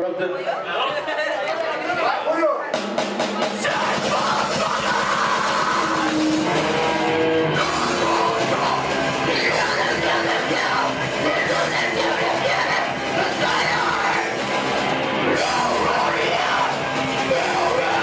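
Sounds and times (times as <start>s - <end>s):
grindcore band playing: 2.6s - 18.0s
distorted guitars: 2.7s - 18.0s
drum hits: 2.8s - 9.2s.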